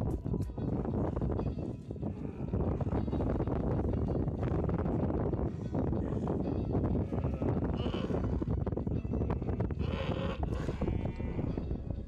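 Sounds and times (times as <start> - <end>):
camels making low distress calls: 1.5 - 12.0
camel high cry: 7.0 - 8.5, 9.1 - 11.7.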